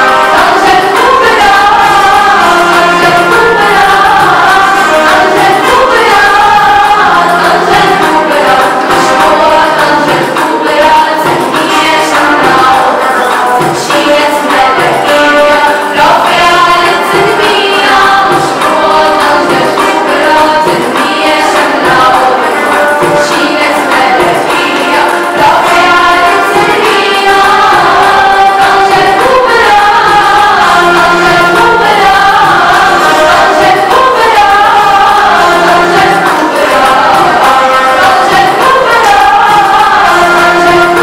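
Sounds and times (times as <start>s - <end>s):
group of voices singing: 0.0s - 41.0s
instrumental backing: 0.0s - 41.0s.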